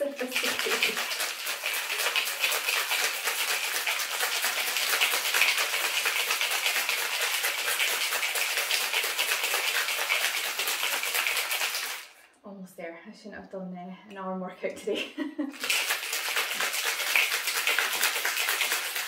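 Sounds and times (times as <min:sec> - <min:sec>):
ice rattling in cocktail shaker: 0:00.0 - 0:12.1, 0:15.5 - 0:19.0.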